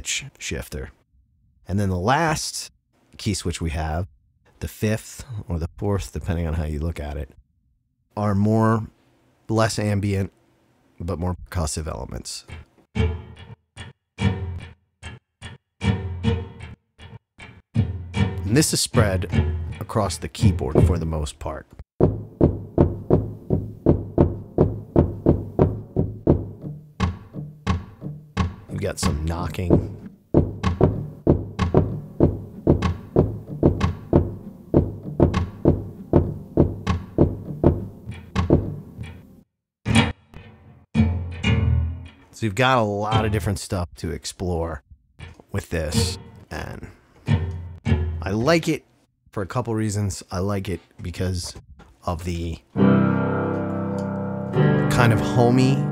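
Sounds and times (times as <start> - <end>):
sampled knocking with low ringing: 22.0 - 39.2
piano notes struck: 52.8 - 55.9.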